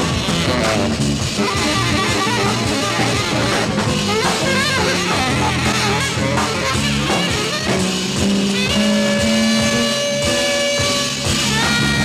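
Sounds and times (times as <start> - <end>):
big band playing: 0.0 - 12.0
electric guitar: 0.0 - 12.0.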